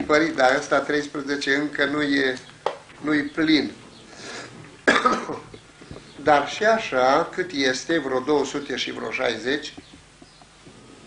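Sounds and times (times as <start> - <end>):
person coughing: 4.8 - 5.6.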